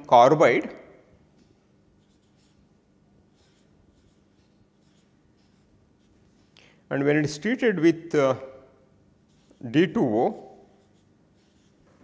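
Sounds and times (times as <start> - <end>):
marker writing on paper: 1.4 - 6.6, 9.2 - 12.0.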